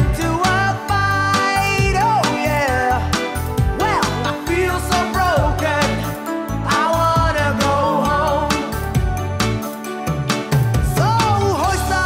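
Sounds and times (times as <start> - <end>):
reggae band playing: 0.0 - 12.0.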